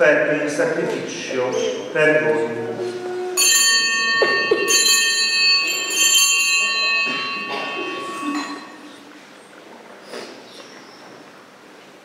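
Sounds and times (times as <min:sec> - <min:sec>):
small altar bells ringing: 0:03.3 - 0:09.1.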